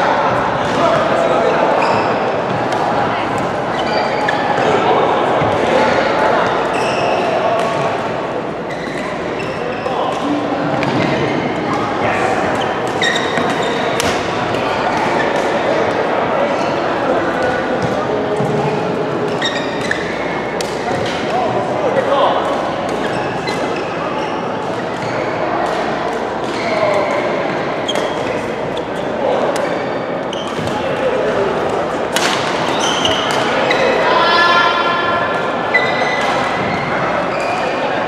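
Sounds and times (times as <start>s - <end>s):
chatter of many players: 0.0s - 38.0s
rackets hitting shuttlecocks: 12.8s - 15.6s, 32.0s - 33.5s.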